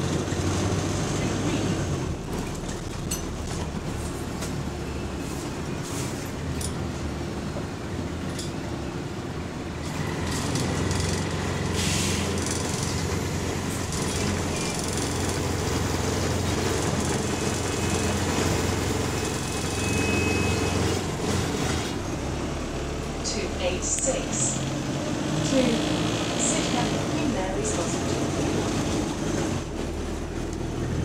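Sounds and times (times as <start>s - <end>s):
bus engine drone: 0.0s - 31.0s
bodywork rattles and knocks: 2.2s - 4.7s.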